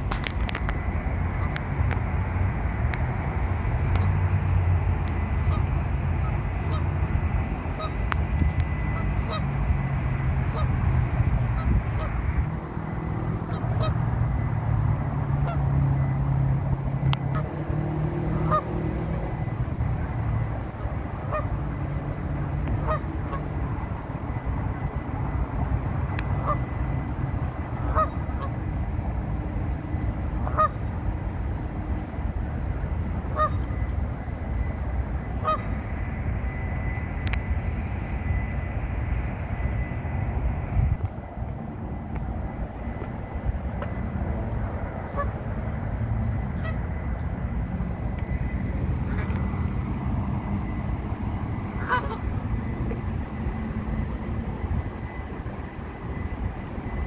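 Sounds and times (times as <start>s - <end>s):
low background rumble: 0.0s - 57.0s
geese honking: 5.4s - 7.1s, 7.7s - 9.6s, 10.4s - 24.2s, 25.8s - 29.2s, 30.2s - 32.3s, 33.0s - 35.9s, 45.0s - 53.3s.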